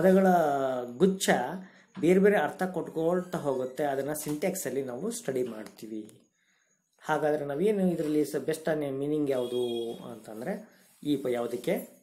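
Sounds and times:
man lecturing: 0:00.0 - 0:06.2, 0:07.0 - 0:12.0.

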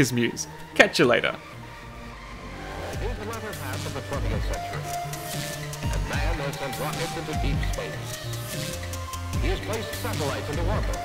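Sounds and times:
man narrating: 0:00.0 - 0:01.6, 0:02.8 - 0:08.7, 0:09.4 - 0:11.0
soundtrack music: 0:00.0 - 0:11.0
low rumble: 0:01.4 - 0:08.1.

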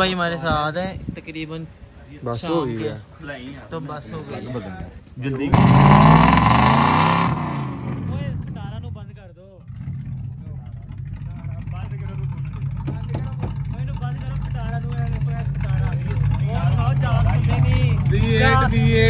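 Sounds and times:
car engine idling: 0:05.5 - 0:19.0
people talking: 0:08.0 - 0:09.6, 0:10.2 - 0:19.0.

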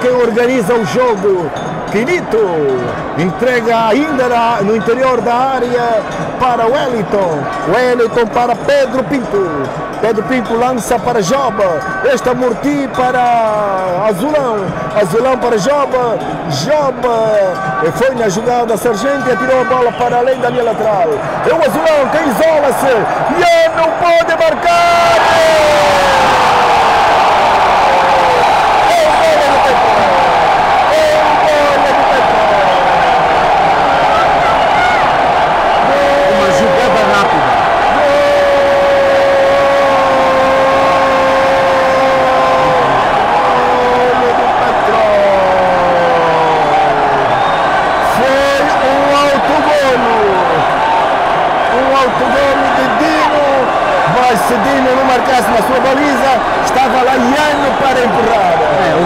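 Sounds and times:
crowd roar: 0:00.0 - 0:59.0.

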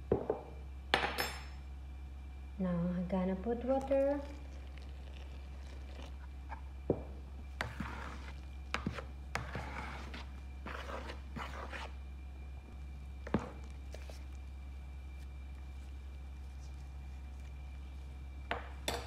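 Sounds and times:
steady low hum: 0:00.0 - 0:19.0
dough squishing and rustling: 0:03.6 - 0:18.9.

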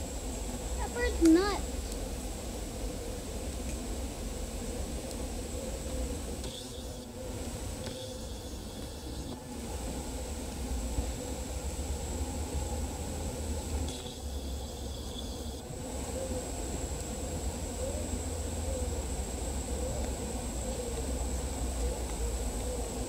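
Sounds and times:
bees buzzing: 0:00.0 - 0:23.0.

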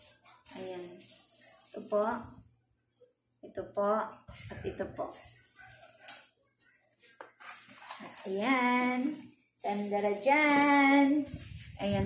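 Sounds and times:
rustling handling noises: 0:00.0 - 0:03.0, 0:04.3 - 0:12.0.

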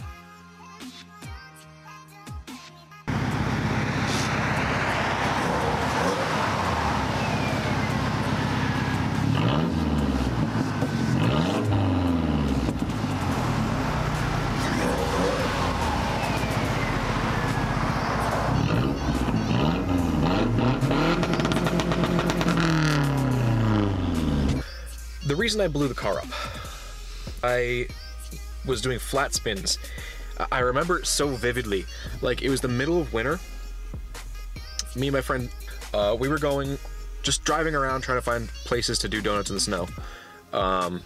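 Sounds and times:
car engines revving: 0:03.1 - 0:24.6.

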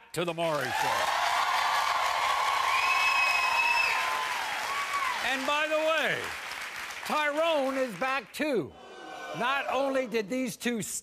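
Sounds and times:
audience applauding: 0:00.4 - 0:08.2.

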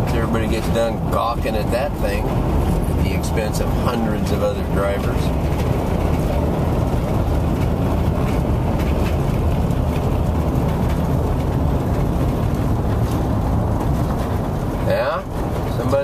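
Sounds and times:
car road and engine noise: 0:00.0 - 0:16.0.

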